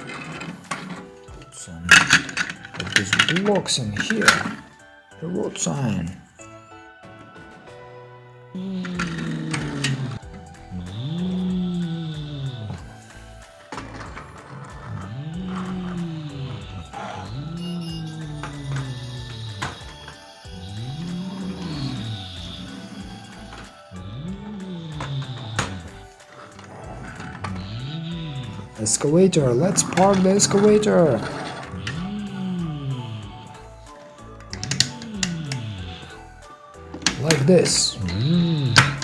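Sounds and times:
man making engine noises: 0:08.6 - 0:13.0, 0:14.9 - 0:19.8, 0:26.8 - 0:33.6.

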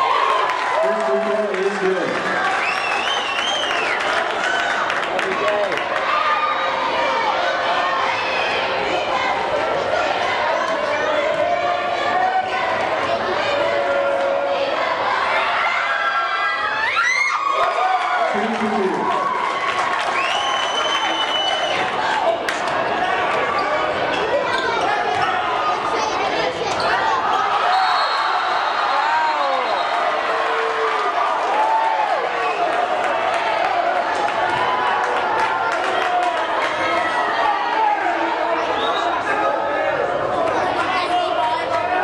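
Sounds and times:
spectators talking and calling out: 0:00.0 - 0:42.0.

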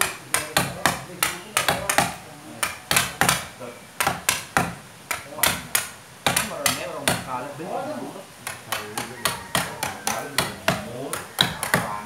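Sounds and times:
mallet knocking chisel into wood: 0:00.0 - 0:07.3, 0:08.4 - 0:12.0.

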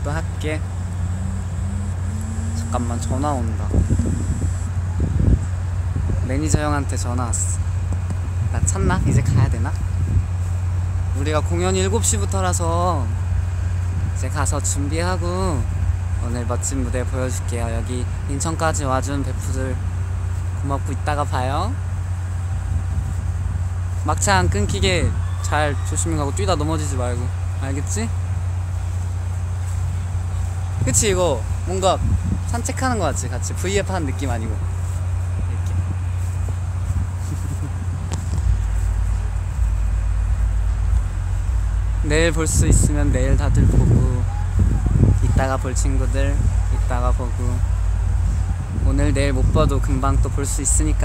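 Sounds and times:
wind on microphone: 0:00.0 - 0:11.2, 0:13.2 - 0:14.8, 0:22.2 - 0:26.0, 0:28.8 - 0:51.0
low outdoor rumble: 0:00.0 - 0:51.0.

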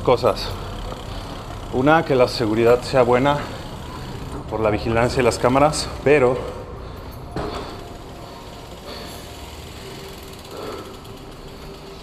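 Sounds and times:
bike freewheel ticking: 0:00.0 - 0:12.0
bike rolling on tiled floor: 0:00.0 - 0:12.0
steady indoor hum: 0:00.0 - 0:12.0.

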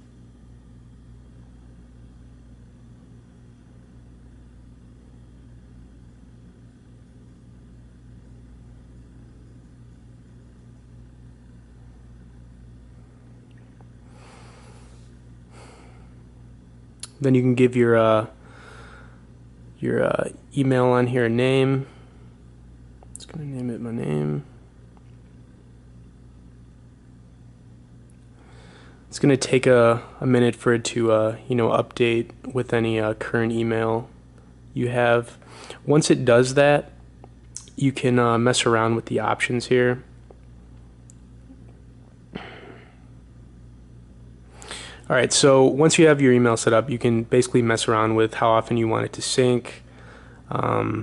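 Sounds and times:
low room hum with hiss: 0:00.0 - 0:51.0.

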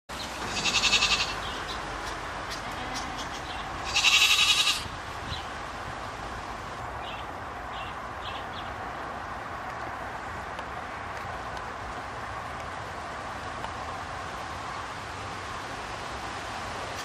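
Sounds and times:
goat bleating: 0:00.4 - 0:01.6, 0:02.5 - 0:04.9.

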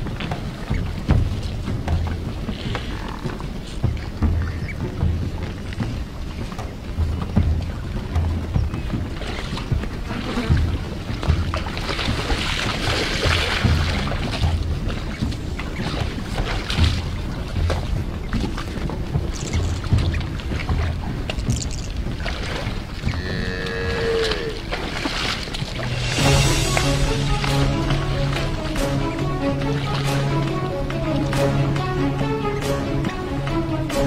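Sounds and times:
herd moving through water: 0:00.0 - 0:34.0
buffalo grunting and lowing: 0:23.1 - 0:24.7.

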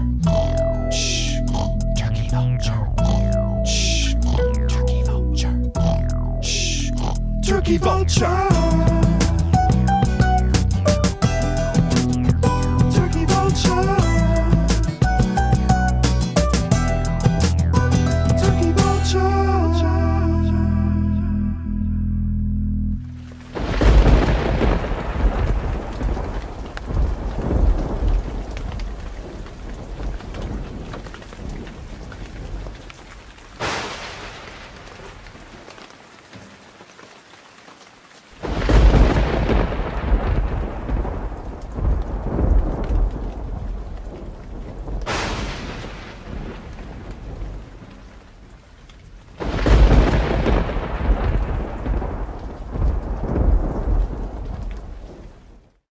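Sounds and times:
steady rain: 0:00.0 - 0:20.0, 0:23.0 - 0:55.9
thunder: 0:23.5 - 0:35.5, 0:38.4 - 0:48.6, 0:49.3 - 0:55.8.

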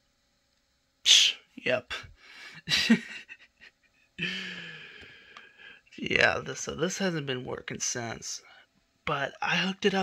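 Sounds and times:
man laughing breathily: 0:02.3 - 0:05.3.

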